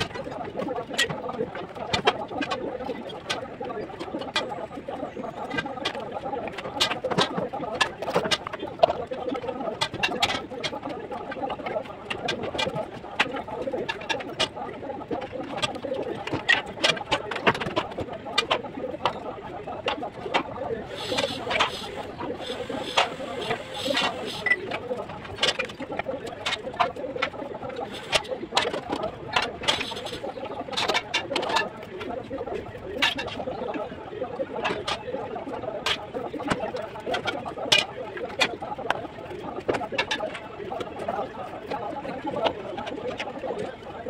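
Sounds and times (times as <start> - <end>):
busy background noise: 0.0 - 44.0.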